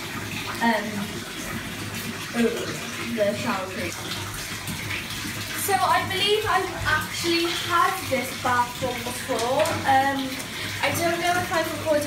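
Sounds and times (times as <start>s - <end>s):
bath filling from tap: 0.0s - 12.0s
girl talking: 5.6s - 12.0s.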